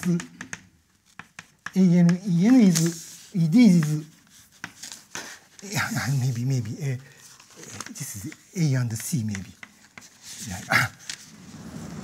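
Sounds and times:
chalk tapping on blackboard: 0:00.0 - 0:05.4, 0:08.2 - 0:11.2.

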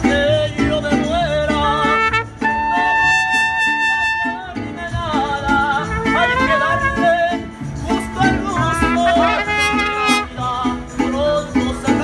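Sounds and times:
strummed guitars: 0:00.0 - 0:12.0
person singing: 0:04.1 - 0:12.0.

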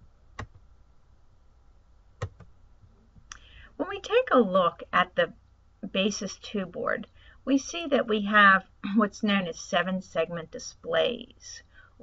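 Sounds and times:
woman speaking: 0:03.3 - 0:11.7.

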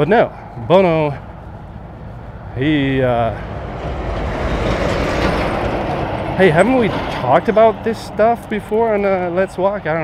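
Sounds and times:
road vehicle passing: 0:00.0 - 0:10.0.

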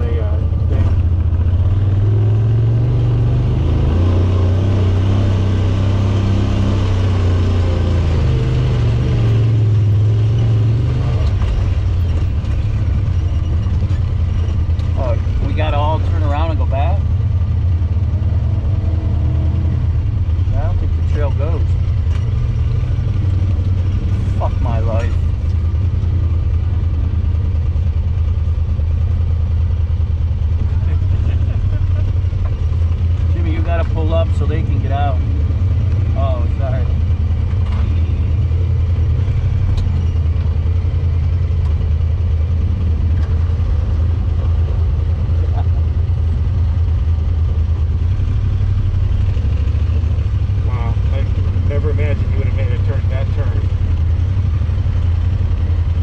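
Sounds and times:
off-road vehicle engine running: 0:00.0 - 0:56.0
voices: 0:14.9 - 0:17.1, 0:20.5 - 0:21.9, 0:23.4 - 0:25.6, 0:30.6 - 0:35.2, 0:36.0 - 0:37.1, 0:45.2 - 0:46.1, 0:50.6 - 0:54.1.

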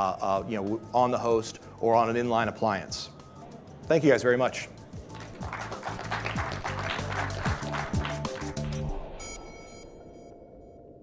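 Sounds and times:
music with low bass line: 0:04.8 - 0:09.4
audience applauding: 0:05.1 - 0:08.9.

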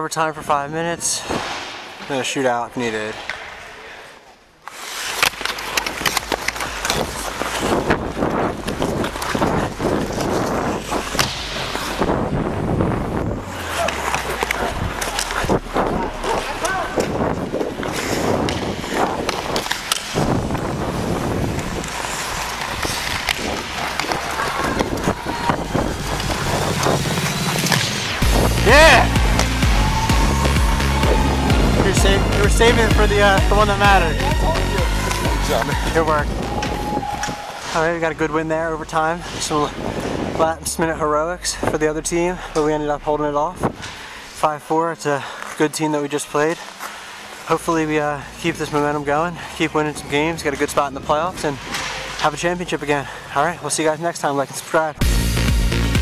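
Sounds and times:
sticks and puck clacking: 0:04.6 - 0:12.2, 0:13.5 - 0:31.5, 0:32.1 - 0:37.9, 0:50.3 - 0:52.7
skate blades scraping ice: 0:04.6 - 0:12.5, 0:13.5 - 0:31.5
players calling out: 0:13.4 - 0:20.0, 0:21.9 - 0:39.6
music with low beat: 0:25.4 - 0:37.0, 0:55.0 - 0:56.0.

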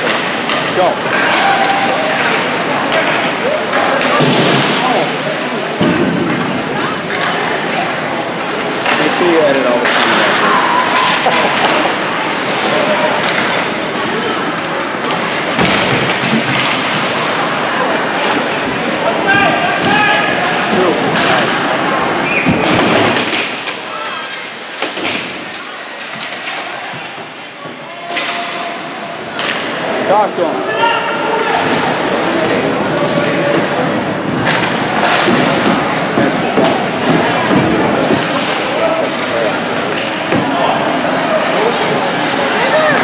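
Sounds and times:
puck and players hitting boards: 0:00.0 - 0:07.9, 0:08.6 - 0:18.5, 0:19.3 - 0:30.0, 0:33.2 - 0:43.0
spectators talking and calling out: 0:00.0 - 0:43.0.

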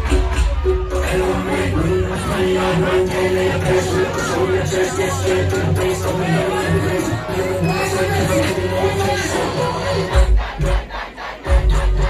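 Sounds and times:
crowd shouting: 0:00.0 - 0:12.0
dancehall music with deep bass: 0:00.0 - 0:12.0.

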